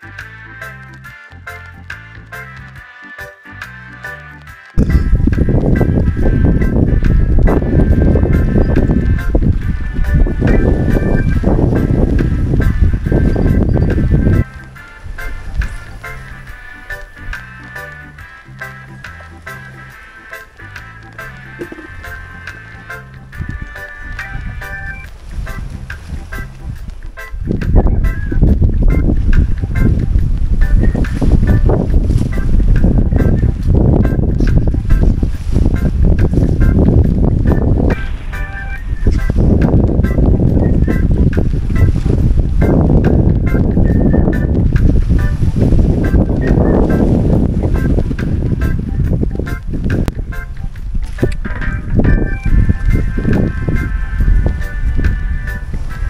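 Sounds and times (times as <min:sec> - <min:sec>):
background music: 0:00.0 - 0:56.0
wind gusting on microphone: 0:04.8 - 0:56.0.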